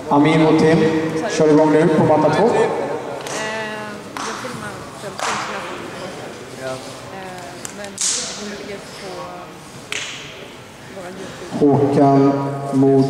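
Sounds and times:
people chattering in a hall: 0.0s - 13.0s.

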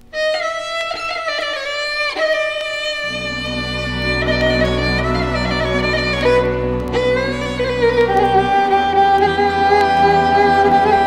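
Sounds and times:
violin melody: 0.0s - 11.0s
low sustained accompaniment: 3.0s - 11.0s.

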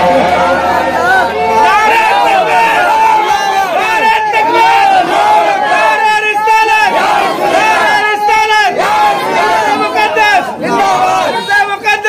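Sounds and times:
men shouting over loudspeaker: 0.0s - 12.0s.

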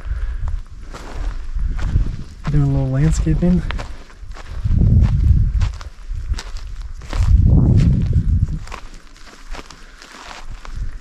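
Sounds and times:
low rumbles: 0.0s - 9.0s
footsteps on dry dirt and grass: 0.0s - 11.0s.

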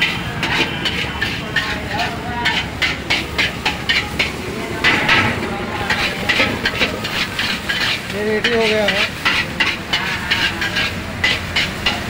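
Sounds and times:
gas burner rushing: 0.0s - 12.0s
metal ladle scraping a wok: 0.0s - 12.0s.

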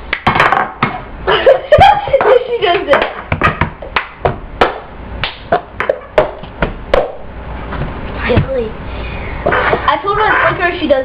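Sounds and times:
hand claps: 3.9s - 7.2s.

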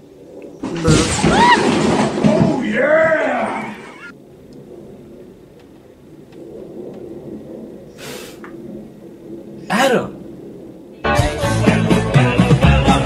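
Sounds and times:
short hiss: 8.0s - 8.5s.

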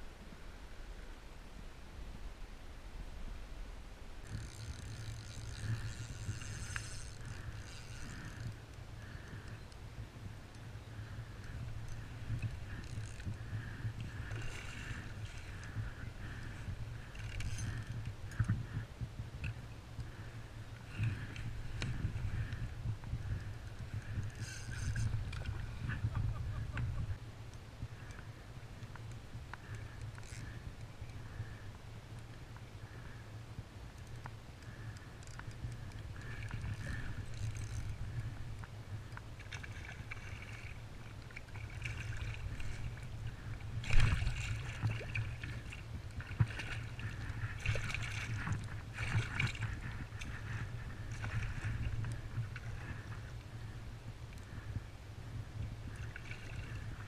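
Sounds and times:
wind rumble on microphone: 0.0s - 57.0s
water lapping against hull: 4.2s - 9.5s, 10.9s - 27.2s, 34.6s - 57.0s.

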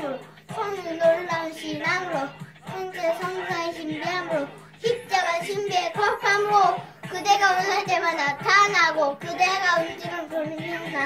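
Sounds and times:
backing track with steady beat: 0.0s - 11.0s
girl rap-style singing: 0.0s - 11.0s.

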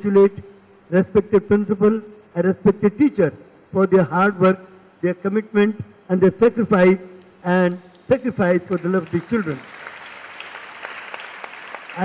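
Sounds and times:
children applauding: 7.9s - 12.0s.

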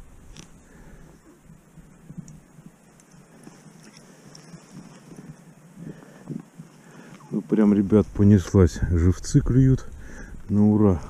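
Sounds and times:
light ticks: 2.0s - 5.4s.

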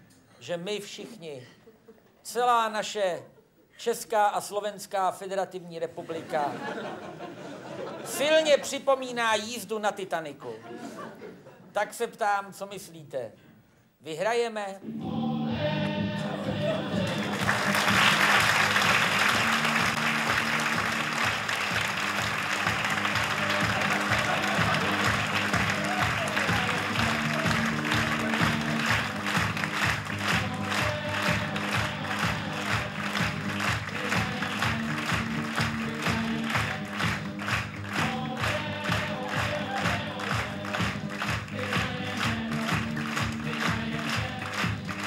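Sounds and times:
audience applauding: 16.6s - 45.0s.

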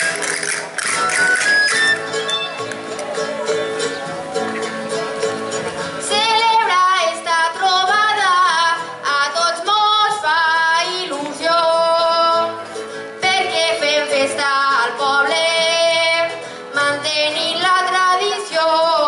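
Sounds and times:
band of plucked strings: 0.0s - 8.6s
woman singing: 6.0s - 12.6s, 13.2s - 19.0s.

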